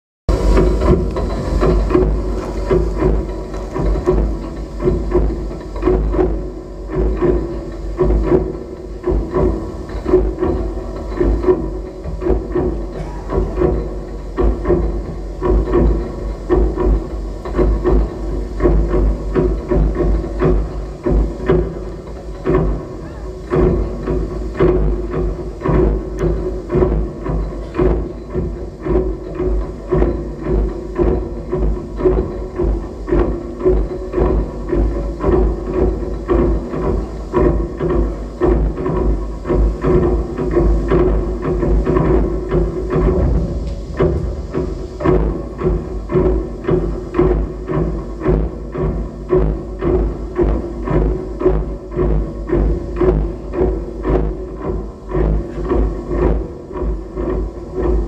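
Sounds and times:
clattering knocks and clicks: 0.3s - 22.8s
steady mid-pitched tone: 0.3s - 58.0s
deep rumble: 40.8s - 49.4s.

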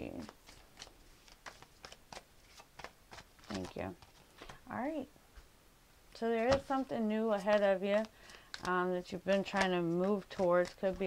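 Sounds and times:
cards being shuffled: 0.0s - 4.6s, 6.4s - 11.0s.

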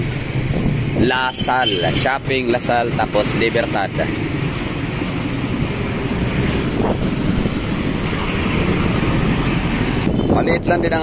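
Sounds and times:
passing vehicles hum: 0.0s - 11.0s
wind on microphone: 5.6s - 11.0s.

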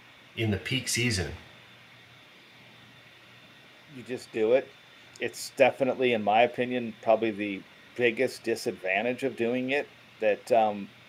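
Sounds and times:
faint background hiss: 0.0s - 11.0s
man talking: 0.4s - 1.5s, 3.9s - 10.9s.

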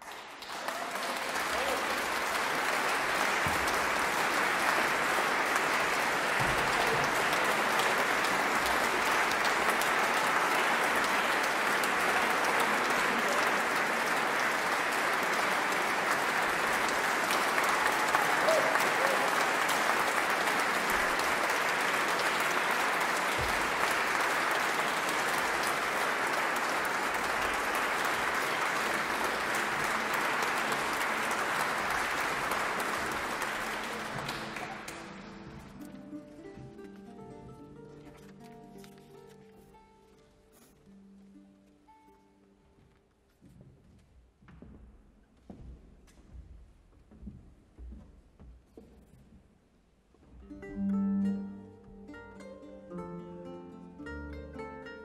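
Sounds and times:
audience applauding: 0.0s - 36.4s.

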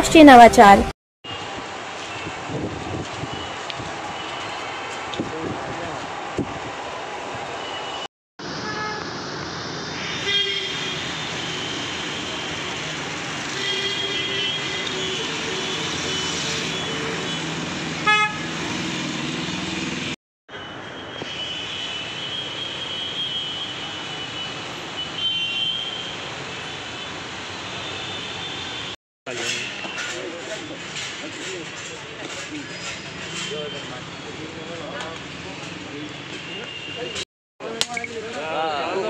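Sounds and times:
traffic noise: 0.0s - 39.0s
vehicle horns honking: 10.2s - 12.6s, 13.5s - 18.6s.

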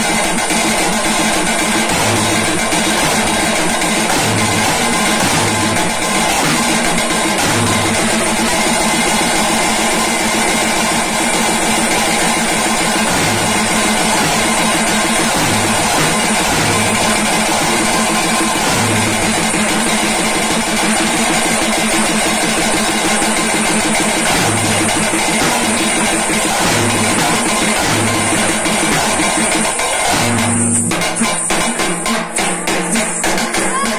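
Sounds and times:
drums playing fast rhythm: 0.0s - 33.9s
hand cymbals clashing: 0.0s - 33.9s.

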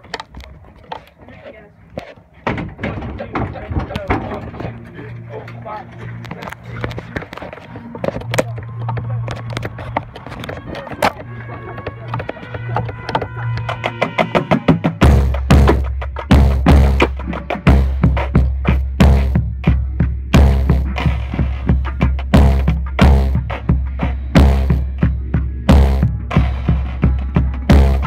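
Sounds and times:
voices talking: 0.0s - 14.8s
knocks and clatter on bass drum: 14.4s - 25.1s, 25.7s - 28.0s.

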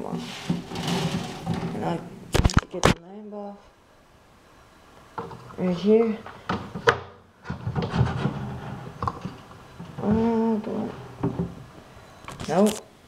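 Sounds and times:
knocks and rattles: 0.0s - 2.6s, 6.4s - 11.7s.

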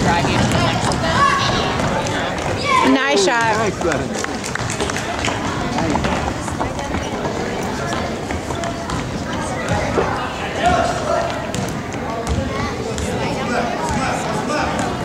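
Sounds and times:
running footsteps: 0.0s - 12.2s
overlapping chatter: 0.0s - 15.0s.

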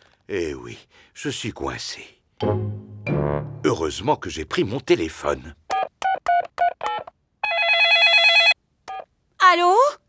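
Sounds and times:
warbling electronic phone ring: 7.4s - 8.6s.

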